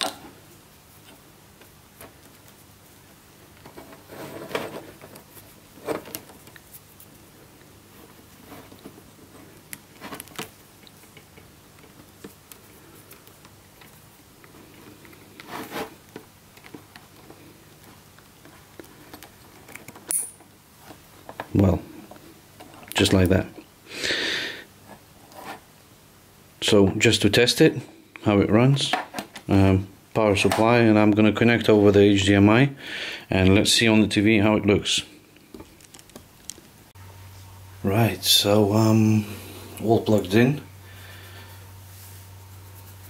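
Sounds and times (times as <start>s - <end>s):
cables rustling: 0.9s - 23.6s, 35.4s - 37.6s.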